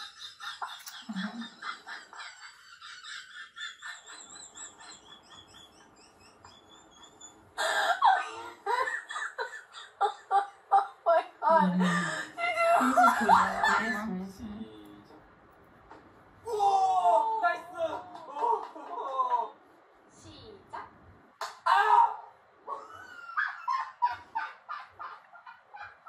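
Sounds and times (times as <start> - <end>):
laughter: 0.0 - 14.2, 17.8 - 19.6, 22.7 - 26.0
speech: 11.4 - 15.1.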